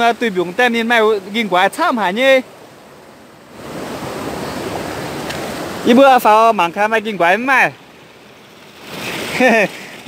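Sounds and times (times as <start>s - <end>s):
stream splashing over rocks: 3.5s - 10.0s.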